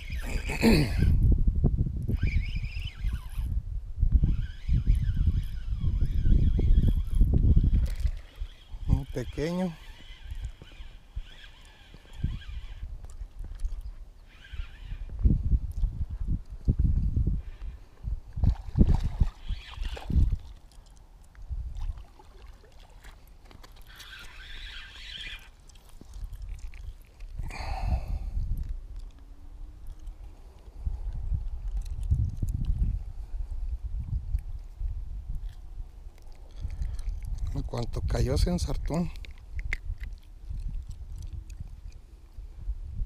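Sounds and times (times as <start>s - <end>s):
fishing reel cranking: 0.0s - 1.2s, 2.0s - 3.6s, 4.2s - 15.1s, 18.9s - 20.6s, 23.4s - 28.0s
wind buffeting microphone: 0.0s - 20.7s, 21.3s - 22.4s, 23.9s - 43.0s.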